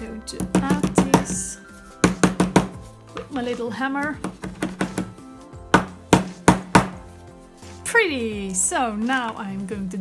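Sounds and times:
hammer tapping metal: 0:00.4 - 0:02.8, 0:04.2 - 0:07.0.

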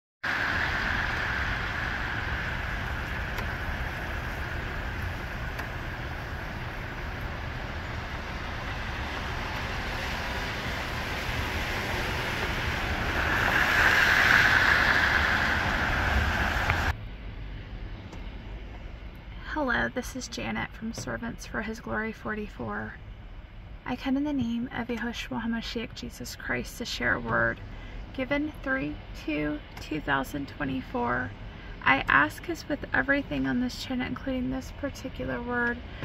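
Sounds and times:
low rumble of engines: 0:00.2 - 0:36.0
tyres hissing on wet pavement: 0:00.3 - 0:16.9.

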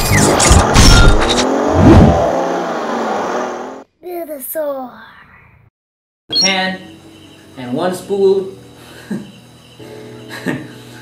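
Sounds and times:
engine-like revving sweeps: 0:00.0 - 0:03.8.

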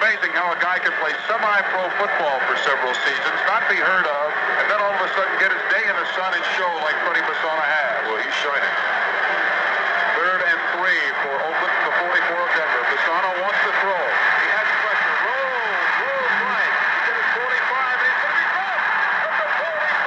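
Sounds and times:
announcer talking: 0:00.0 - 0:08.8, 0:10.2 - 0:20.0.

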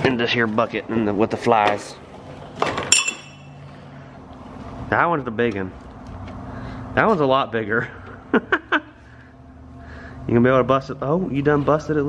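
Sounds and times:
metal ring clinking into plastic bucket: 0:02.8 - 0:03.6.

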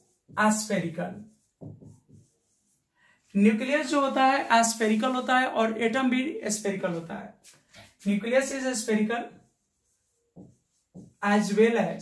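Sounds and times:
chalk writing on chalkboard: 0:00.0 - 0:05.1, 0:07.0 - 0:12.0.

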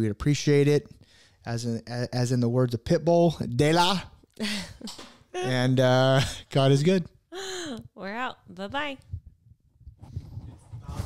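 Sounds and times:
microphone handling thumps and rustles: 0:08.7 - 0:11.0.

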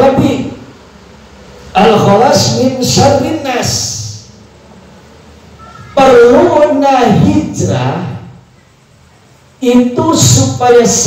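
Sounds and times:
man speaking: 0:00.0 - 0:00.7, 0:01.7 - 0:04.4, 0:05.8 - 0:08.4, 0:09.6 - 0:11.0.

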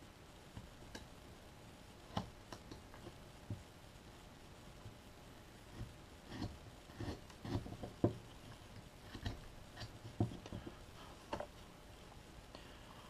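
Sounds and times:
knife cutting wood: 0:05.8 - 0:08.0.

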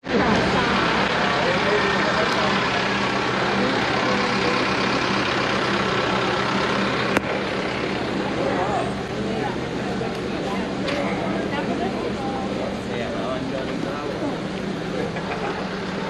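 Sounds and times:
minibus engine idling: 0:00.0 - 0:16.0
people chattering: 0:00.0 - 0:16.0.

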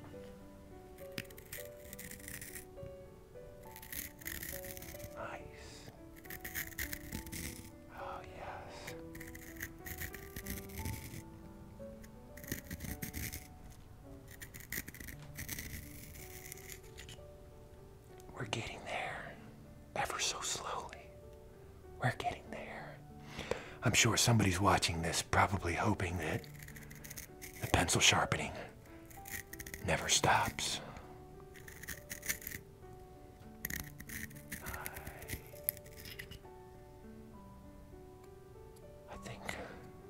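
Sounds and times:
soft background music: 0:00.0 - 0:40.0
pencil sharpener scraping: 0:01.0 - 0:02.8, 0:03.6 - 0:05.2, 0:06.1 - 0:07.8, 0:08.8 - 0:11.3, 0:12.0 - 0:17.2, 0:26.3 - 0:28.2, 0:28.8 - 0:30.7, 0:31.5 - 0:32.6, 0:33.5 - 0:36.4.

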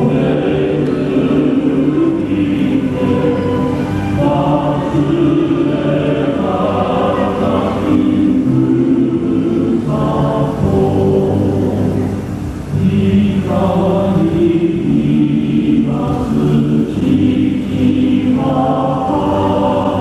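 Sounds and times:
choir singing slow song: 0:00.0 - 0:20.0.

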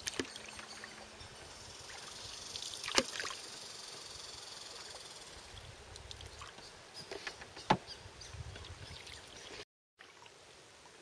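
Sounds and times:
paddle in water: 0:00.0 - 0:03.6
water trickling and sloshing: 0:00.0 - 0:03.6, 0:04.7 - 0:07.3, 0:08.2 - 0:11.0.

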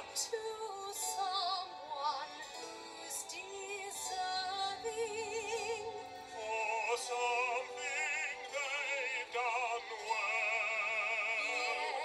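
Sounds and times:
operatic singing through tv speaker: 0:00.0 - 0:12.0.

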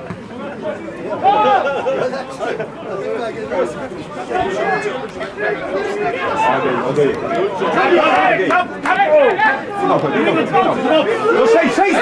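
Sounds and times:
voices shouting and calling: 0:00.0 - 0:12.0.

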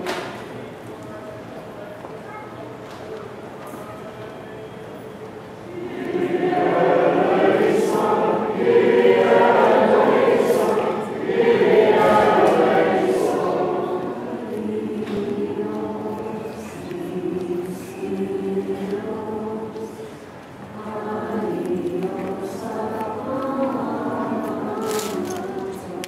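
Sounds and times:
choir and congregation chanting hymn: 0:05.6 - 0:26.0.

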